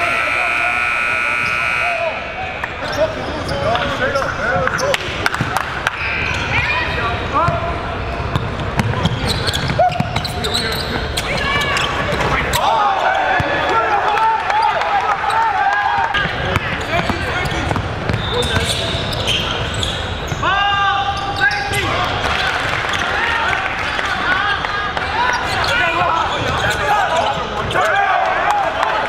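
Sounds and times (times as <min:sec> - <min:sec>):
people talking and calling out: 0:00.0 - 0:29.0
sneakers squeaking: 0:02.7 - 0:12.7, 0:16.1 - 0:22.2, 0:25.0 - 0:27.9.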